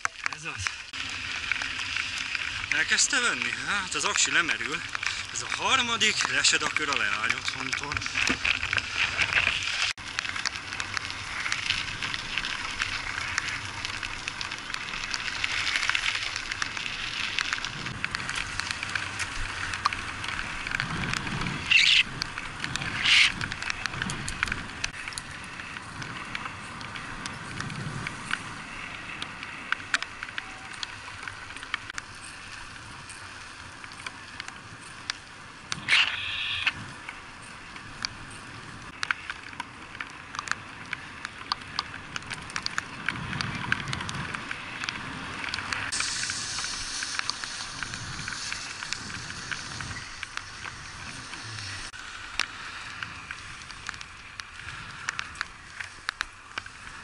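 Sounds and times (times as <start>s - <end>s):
bicycle clicks and rattles: 0.0s - 57.0s
bicycle tyres hissing on wet asphalt: 0.0s - 57.0s.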